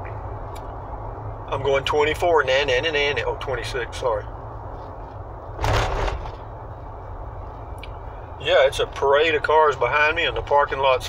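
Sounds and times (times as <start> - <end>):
car engine and tyres rumbling: 0.0 - 11.0
loud rush of noise: 5.5 - 7.4.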